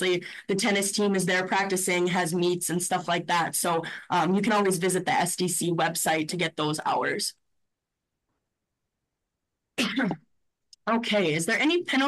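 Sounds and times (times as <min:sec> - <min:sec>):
person speaking: 0:00.0 - 0:07.5, 0:09.8 - 0:12.0
person clearing throat: 0:09.8 - 0:10.3.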